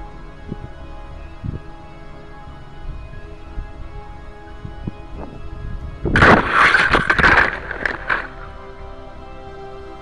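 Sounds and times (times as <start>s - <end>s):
music: 0.0s - 10.0s
rustling and knocks in grass: 6.2s - 8.5s.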